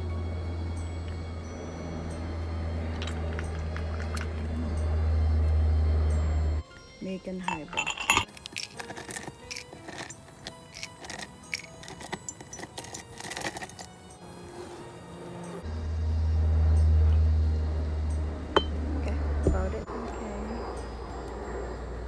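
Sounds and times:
low vehicle engine rumble: 0.0 - 6.6, 13.8 - 22.0
ice cubes clinking in a glass: 7.5 - 13.9.

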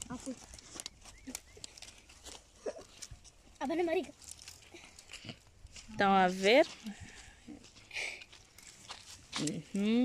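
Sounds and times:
firewood rustling and knocking: 0.0 - 7.0.

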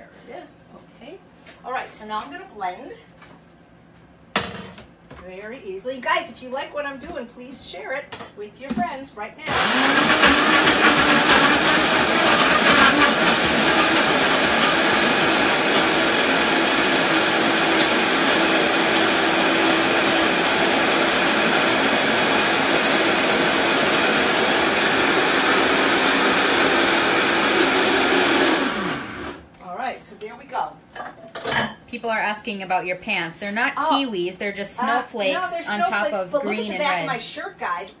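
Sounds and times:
blender running: 9.5 - 29.5.

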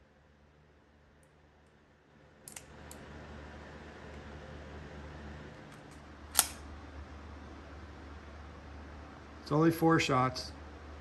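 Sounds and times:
steady low hum: 0.0 - 11.0
sharp click: 5.7 - 6.6.

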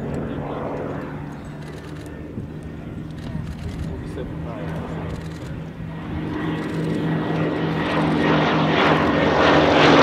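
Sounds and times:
propeller aircraft flying past: 0.0 - 10.0.

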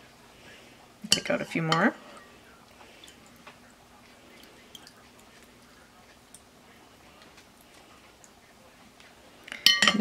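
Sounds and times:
water dripping: 2.6 - 6.5.

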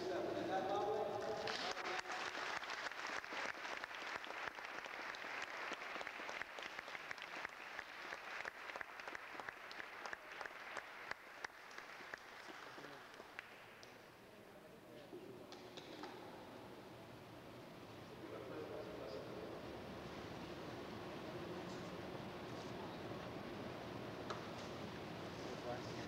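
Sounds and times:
congregation applauding: 1.0 - 13.8.

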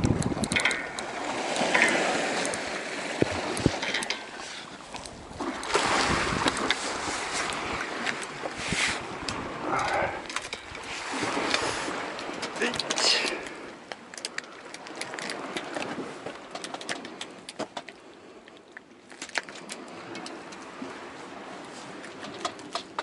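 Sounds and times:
fishing reel clicks and knocks: 0.0 - 1.1
wind on microphone: 0.0 - 13.5
sea water washing against rocks: 0.0 - 23.0.

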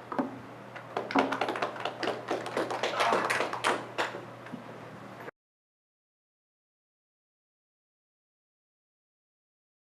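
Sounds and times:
audience clapping: 1.0 - 4.2.

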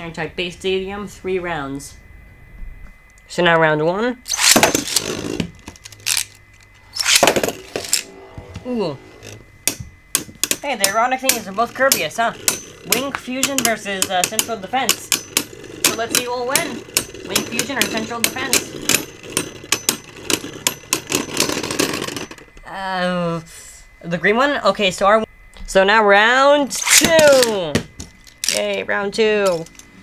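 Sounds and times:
ripcord ripping zip: 4.3 - 6.3, 6.9 - 8.2, 26.7 - 27.5
spinning tops clacking together: 4.3 - 6.4, 7.0 - 8.1
spinning tops whirring: 4.3 - 22.6, 26.7 - 30.0
ripcord launcher clack: 26.8 - 28.8.

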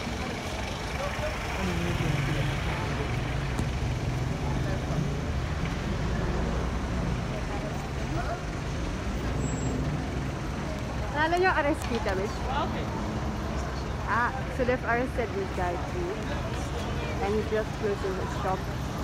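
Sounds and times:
street noise: 0.0 - 19.0
vehicle engine running: 0.0 - 19.0.

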